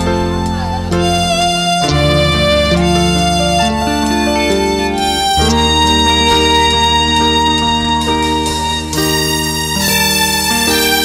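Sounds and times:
instrumental music over low bass: 0:00.0 - 0:11.0.

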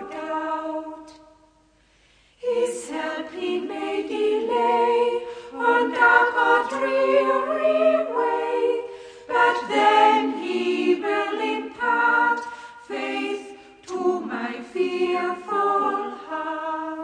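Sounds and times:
choir singing a hymn: 0:00.0 - 0:01.5, 0:02.4 - 0:17.0.

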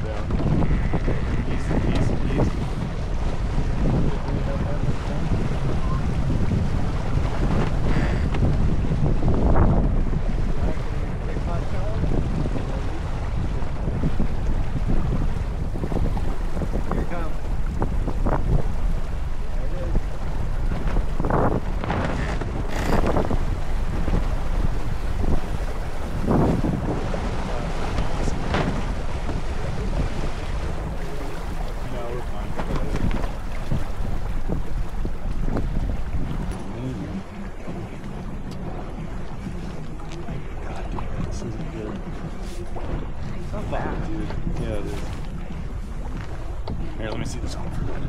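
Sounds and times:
water rushing along hull: 0:00.0 - 0:48.0
water splashing: 0:00.0 - 0:48.0
wind buffeting microphone: 0:00.0 - 0:48.0.

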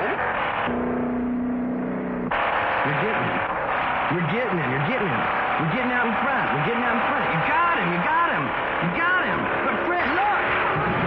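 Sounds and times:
car engine and road noise: 0:00.0 - 0:11.0
steady engine drone: 0:00.0 - 0:11.0.

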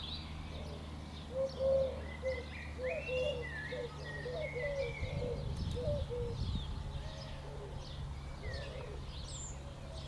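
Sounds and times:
pigeon cooing: 0:00.6 - 0:10.0
bird whistling: 0:01.4 - 0:06.1.

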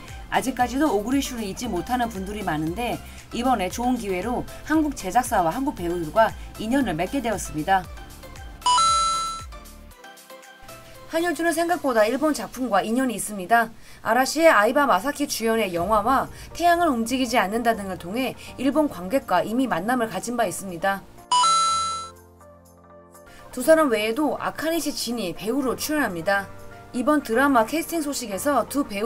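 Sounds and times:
quiet background music: 0:00.0 - 0:29.0
bright chime: 0:08.7 - 0:09.5, 0:21.3 - 0:22.1.

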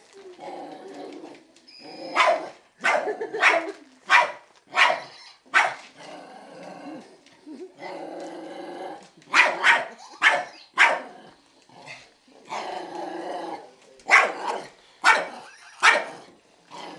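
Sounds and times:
dog growling: 0:00.2 - 0:02.5, 0:06.0 - 0:09.3, 0:11.0 - 0:16.9
dog barking: 0:02.2 - 0:05.8, 0:09.3 - 0:11.2, 0:14.1 - 0:16.2.

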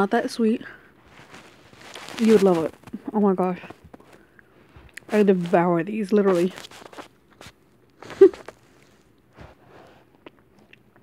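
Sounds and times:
person chewing gummy snacks: 0:01.0 - 0:05.2, 0:06.4 - 0:09.3, 0:09.9 - 0:11.0.

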